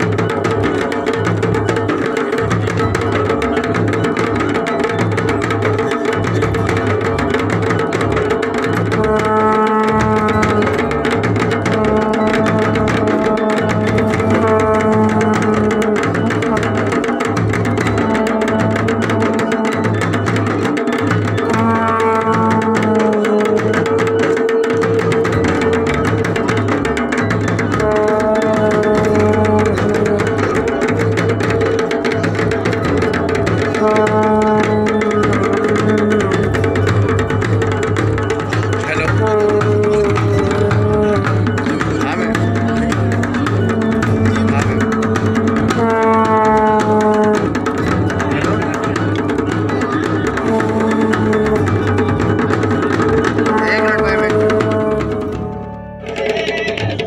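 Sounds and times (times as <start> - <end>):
drums playing fast beat: 0.0 - 57.0.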